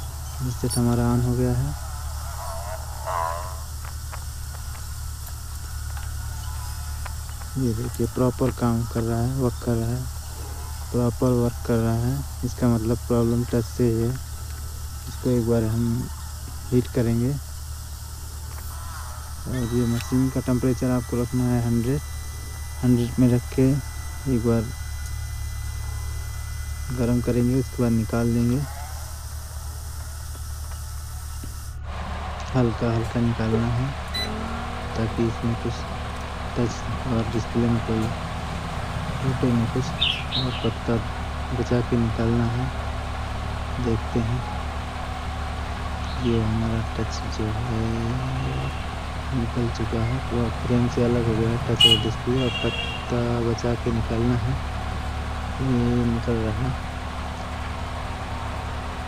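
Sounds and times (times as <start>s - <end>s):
low electrical hum: 0.0s - 59.0s.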